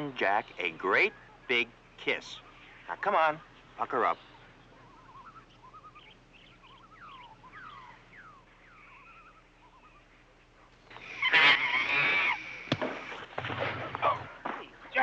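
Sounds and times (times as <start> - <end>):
quiet outdoor ambience: 0.0 - 15.0
faint bird chirps: 0.2 - 12.7.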